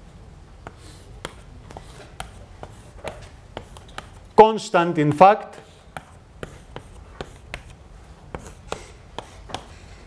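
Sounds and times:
chalk tapping and scratching: 0:00.6 - 0:04.3, 0:05.5 - 0:09.9.

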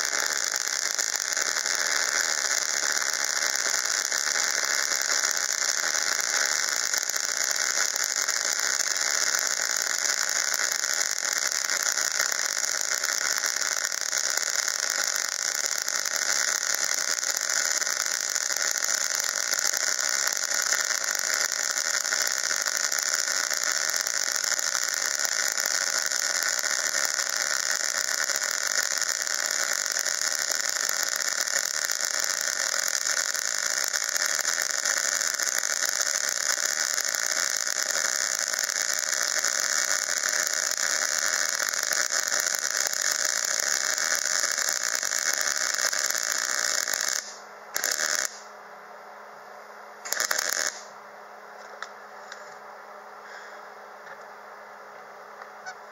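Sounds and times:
welding arc hissing: 0:00.0 - 0:48.5, 0:50.0 - 0:51.0.

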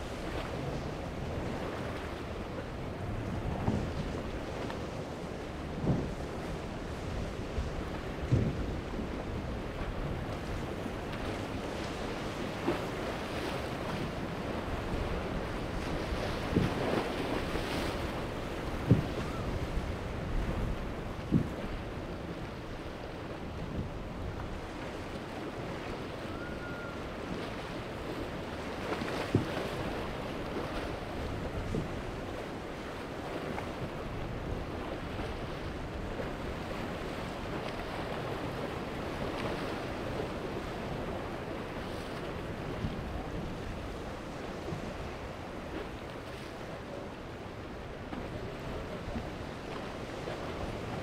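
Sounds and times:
surf rushing: 0:00.0 - 0:51.0
wind buffeting microphone: 0:00.0 - 0:51.0.

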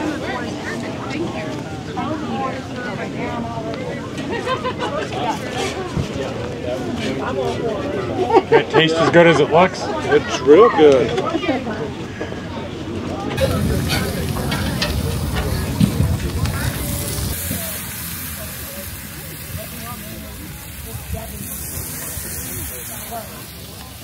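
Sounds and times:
burger patties sizzling on griddle: 0:13.4 - 0:24.0.

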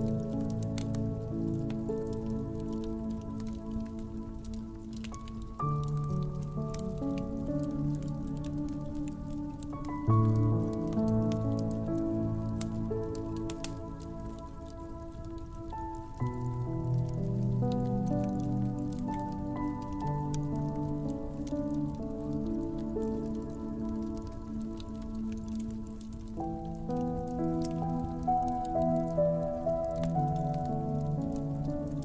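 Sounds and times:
slow piano chords: 0:00.0 - 0:32.0
wood fire crackling: 0:00.0 - 0:32.0.

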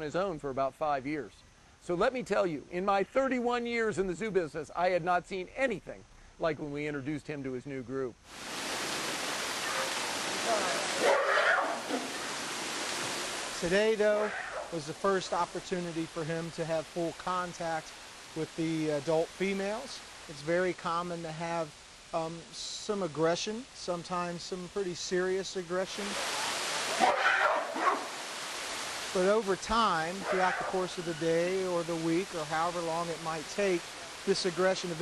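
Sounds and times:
gorilla harsh cry: 0:09.6 - 0:12.2, 0:14.2 - 0:14.7, 0:26.9 - 0:28.2, 0:30.2 - 0:31.3.

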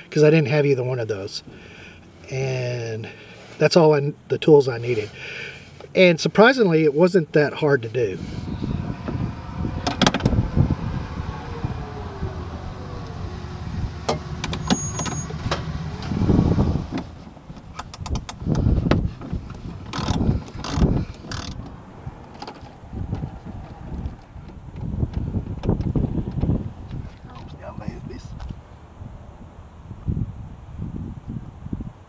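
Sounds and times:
low vehicle hum: 0:00.0 - 0:32.0.

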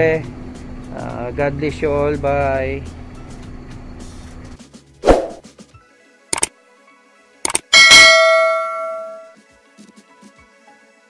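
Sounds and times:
quick double click: 0:07.5 - 0:07.7
notification bell ding: 0:07.7 - 0:09.3.

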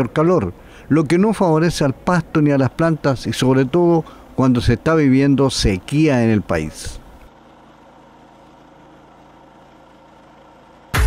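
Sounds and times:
pressure washer humming: 0:01.4 - 0:11.0.

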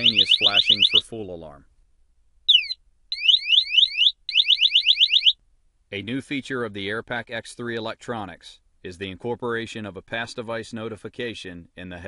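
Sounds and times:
rising electronic alarm chirps: 0:00.0 - 0:01.0, 0:02.5 - 0:05.4.

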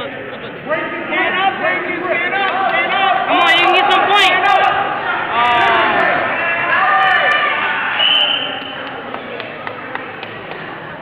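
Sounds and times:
murmur of voices: 0:00.0 - 0:11.0
spectators shouting: 0:00.7 - 0:08.8
referee's whistle: 0:07.9 - 0:08.8.

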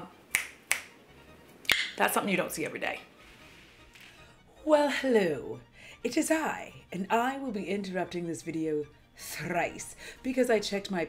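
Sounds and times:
fingers snapping: 0:00.3 - 0:01.0, 0:01.6 - 0:02.0.

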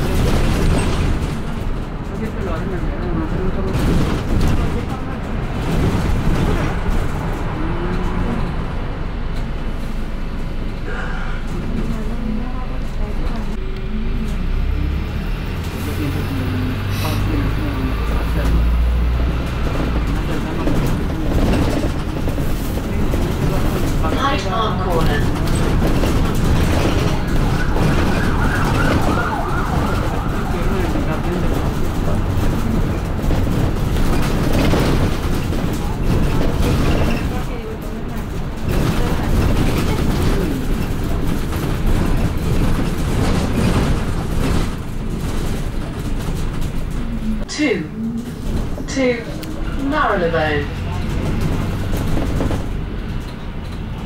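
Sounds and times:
bus body rattling: 0:00.0 - 0:54.0
bus engine and road rumble: 0:00.0 - 0:54.0.

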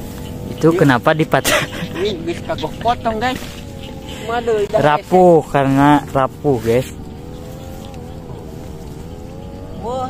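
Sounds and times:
motor engine running: 0:00.0 - 0:10.0.

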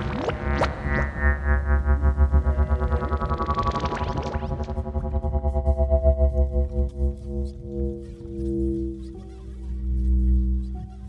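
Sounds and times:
held synthesizer chord: 0:00.0 - 0:09.1
fast-pulsing deep bass: 0:00.0 - 0:11.0.

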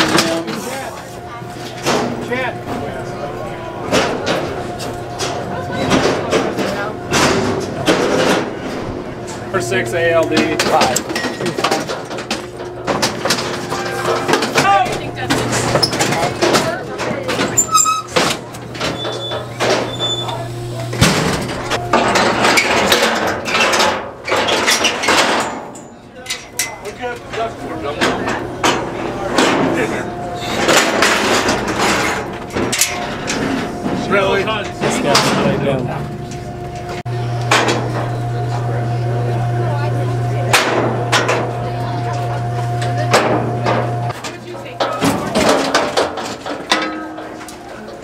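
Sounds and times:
hydraulic pump humming: 0:00.0 - 0:25.1, 0:26.0 - 0:48.0
steel chute clanging: 0:00.0 - 0:48.0.

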